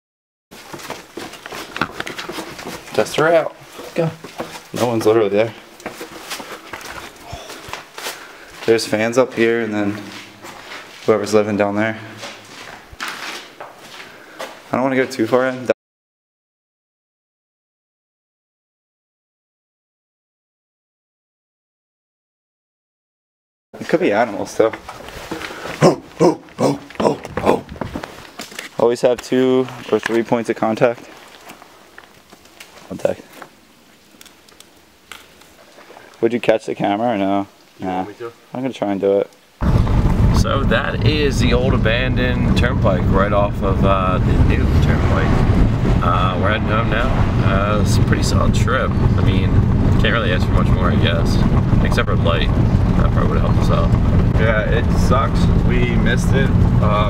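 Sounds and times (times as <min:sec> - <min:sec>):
light scuffs and knocks: 0:00.6 - 0:05.2, 0:05.8 - 0:11.2, 0:12.1 - 0:15.7
shuffling footsteps: 0:00.6 - 0:15.7, 0:23.8 - 0:33.6
hands and shoes scuffing rock: 0:05.8 - 0:08.8.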